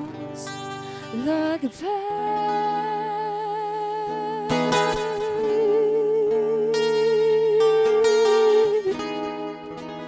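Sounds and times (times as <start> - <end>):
acoustic guitar: 0.0 - 10.0
guitar strum: 0.0 - 10.0
woman singing into a microphone: 0.0 - 10.0.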